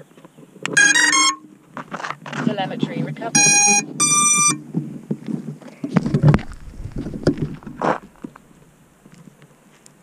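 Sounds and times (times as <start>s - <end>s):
short electronic beep: 0.8s - 1.5s, 3.4s - 4.6s
handling noise clattering: 6.0s - 8.8s
low thumps: 6.0s - 8.8s.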